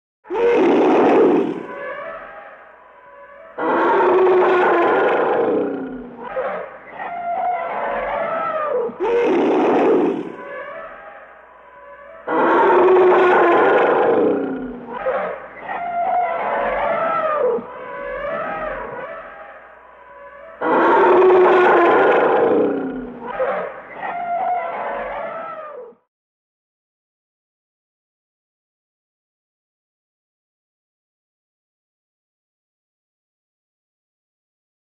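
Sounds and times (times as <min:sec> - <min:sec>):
elephants trumpeting: 0:00.3 - 0:25.8.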